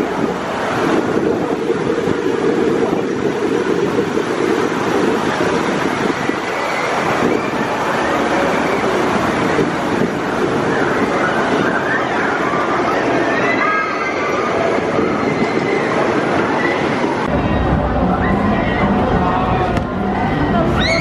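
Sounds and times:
roller coaster rumbling on track: 0:00.0 - 0:21.0.

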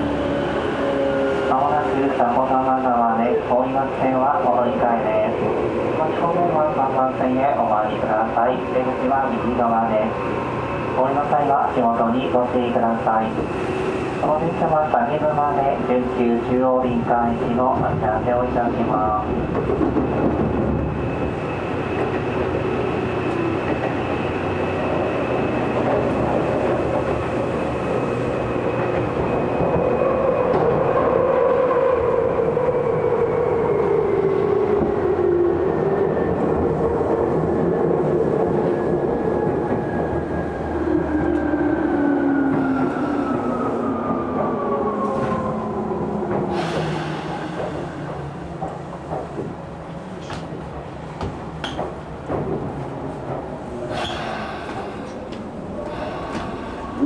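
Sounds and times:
train rumble and rail clatter: 0:00.0 - 0:57.0
air brake hiss: 0:46.5 - 0:48.0, 0:53.9 - 0:55.2, 0:55.9 - 0:57.0.

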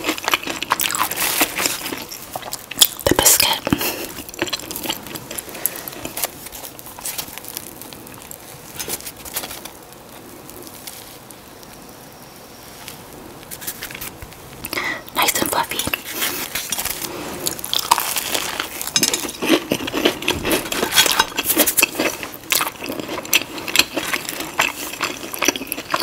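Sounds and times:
chewing biscuit: 0:00.0 - 0:11.7, 0:13.4 - 0:26.0.

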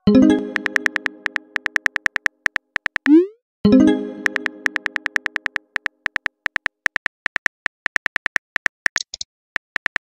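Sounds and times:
phone keyboard typing clicks: 0:00.5 - 0:03.2, 0:04.2 - 0:09.2.

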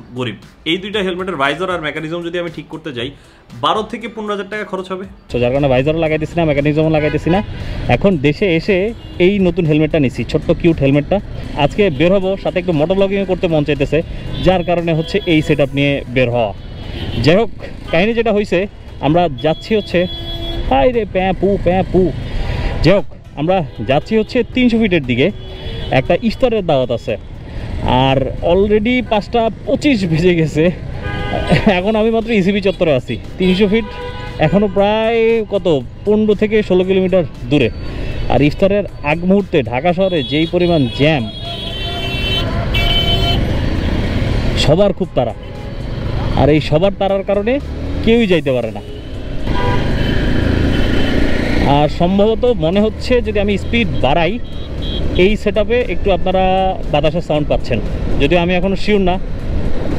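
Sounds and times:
man speaking: 0:00.0 - 0:16.6, 0:27.9 - 0:41.4, 0:46.3 - 0:48.9, 0:51.7 - 0:54.4, 0:55.2 - 0:59.2
city traffic: 0:00.0 - 0:59.9
faint vehicle horn: 0:40.2 - 0:43.5.

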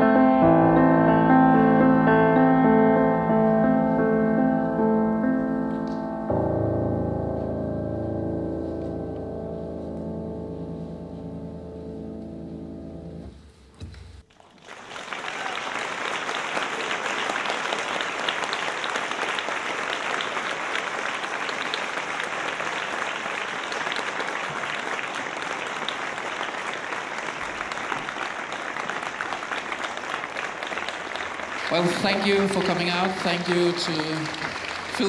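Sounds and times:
audience applauding: 0:14.2 - 0:35.0
man speaking: 0:31.7 - 0:35.0.

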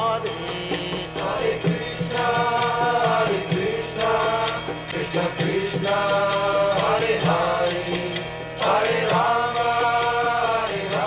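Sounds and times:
devotional chant singing: 0:00.0 - 0:11.0
instrumental accompaniment: 0:00.0 - 0:11.0.

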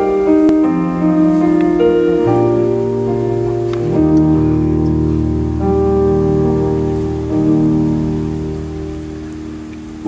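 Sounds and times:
keyboard chords: 0:00.0 - 0:10.0.

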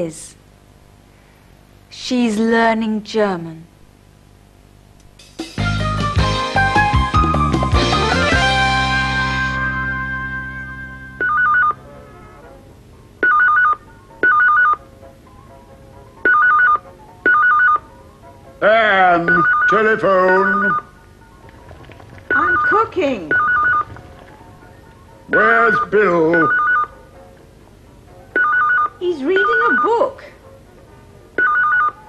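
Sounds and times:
telephone ringing: 0:10.8 - 0:12.4, 0:13.2 - 0:14.9, 0:16.2 - 0:17.9, 0:18.7 - 0:27.1, 0:28.3 - 0:30.1, 0:31.4 - 0:32.0
telephone ringing with warble: 0:21.6 - 0:26.9.

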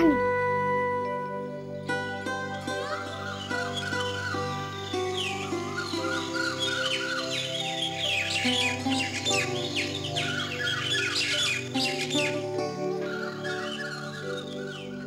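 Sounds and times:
music of sustained notes: 0:00.0 - 0:15.0
bird chirps: 0:02.7 - 0:15.0.

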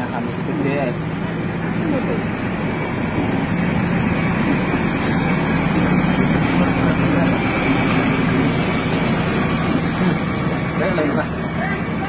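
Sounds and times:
loud din of voices: 0:00.0 - 0:12.0
vehicle engine humming: 0:00.0 - 0:12.0.

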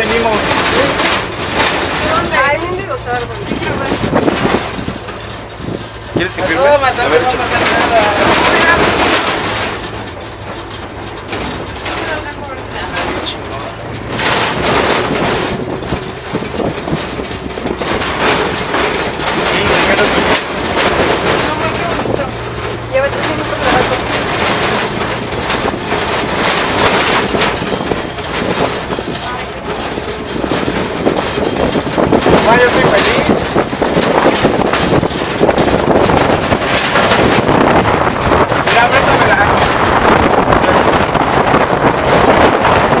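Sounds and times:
clatters and jolts: 0:00.0 - 0:43.0
truck bed rattling and knocking: 0:00.0 - 0:43.0
wind noise: 0:00.0 - 0:43.0.

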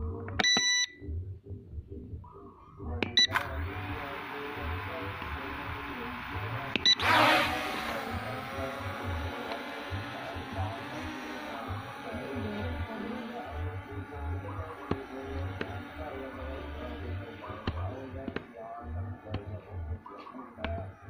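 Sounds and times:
background music beat: 0:00.0 - 0:21.0
drone beeping: 0:03.2 - 0:18.0
drone motors whining: 0:03.2 - 0:21.0.

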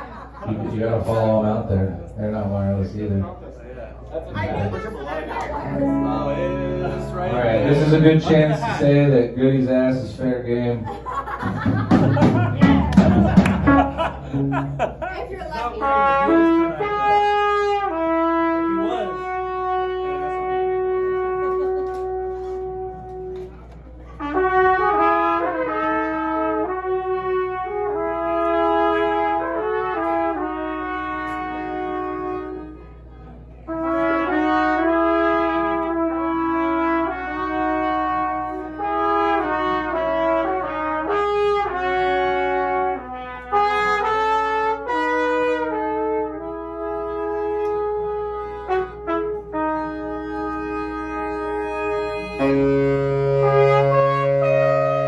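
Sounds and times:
low steady hum: 0:00.0 - 0:11.3
melodic lead line: 0:05.6 - 0:08.3.

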